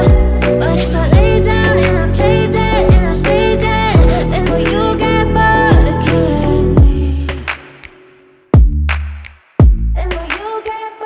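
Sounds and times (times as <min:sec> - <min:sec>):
deep bass notes sliding down: 0:00.0 - 0:07.4
pop song with sung melody: 0:00.0 - 0:08.2, 0:10.0 - 0:11.0.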